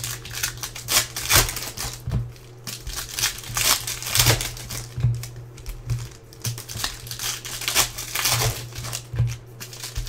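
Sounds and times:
foil wrapper crinkling: 0.0 - 10.0
low steady hum: 0.0 - 10.0.

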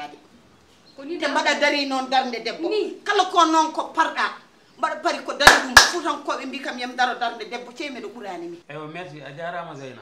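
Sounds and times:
woman speaking: 1.0 - 8.6
hand claps: 5.4 - 6.1.

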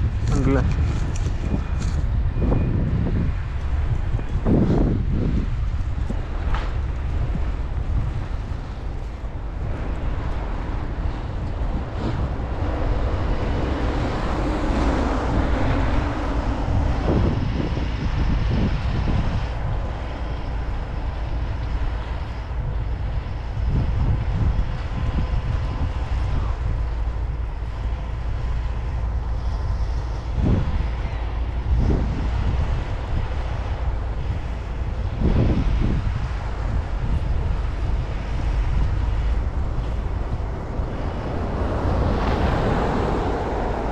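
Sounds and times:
traffic on snowy road: 0.0 - 43.9
wind buffeting microphone: 0.0 - 43.9
vehicle passing: 3.3 - 20.8, 27.3 - 43.9.

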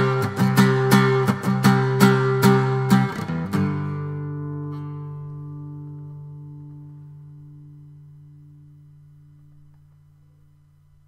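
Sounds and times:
guitar chord ringing: 0.0 - 11.0.

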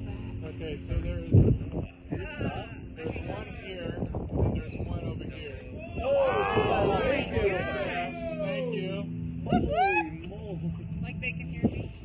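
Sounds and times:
people talking quietly: 0.0 - 12.0
steady low hum: 0.0 - 12.0.

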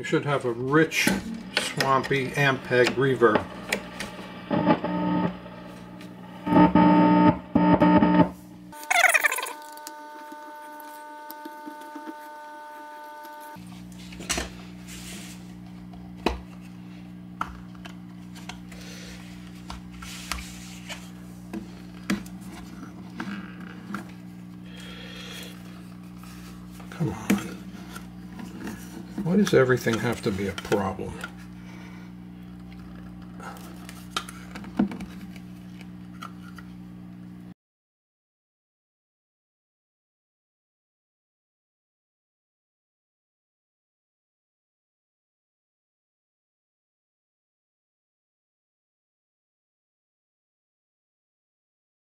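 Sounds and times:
guitar amp mains hum: 0.0 - 37.5
held amp tone: 0.5 - 13.6
loud amp bursts: 0.8 - 13.6.

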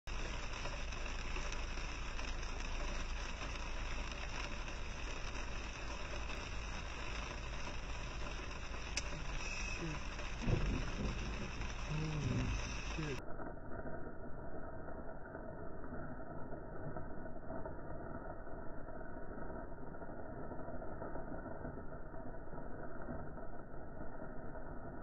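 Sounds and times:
heavy rain on car roof: 0.0 - 13.2
short loud low burst: 9.0 - 13.2.

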